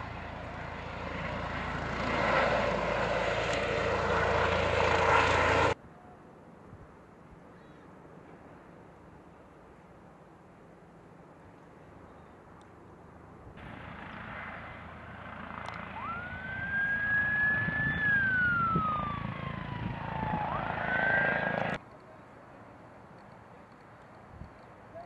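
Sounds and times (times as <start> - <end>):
vehicle low noise: 0.0 - 25.0
emergency vehicle siren wailing: 15.7 - 21.8.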